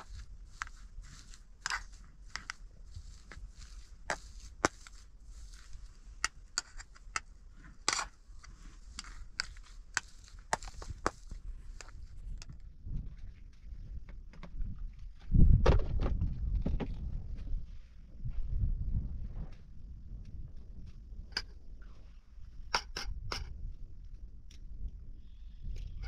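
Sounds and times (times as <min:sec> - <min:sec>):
spoon scraping bowl: 0:00.0 - 0:12.0.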